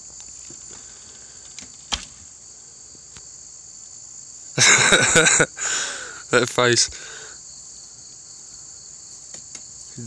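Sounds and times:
high-pitched insects droning: 0:00.0 - 0:10.0.

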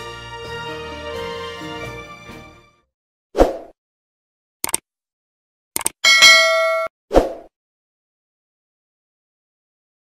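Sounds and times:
bright bell ding: 0:06.0 - 0:06.9.

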